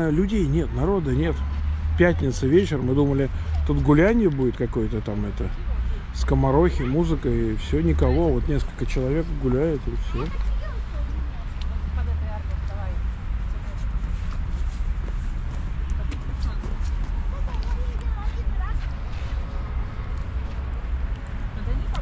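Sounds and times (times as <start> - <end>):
faint voices of passers-by: 0.0 - 22.0
low street rumble: 0.0 - 22.0.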